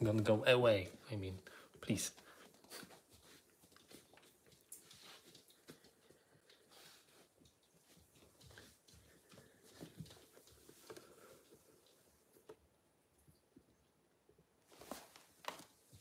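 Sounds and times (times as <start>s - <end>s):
small taps and rustles: 1.8s - 13.7s, 14.6s - 16.0s.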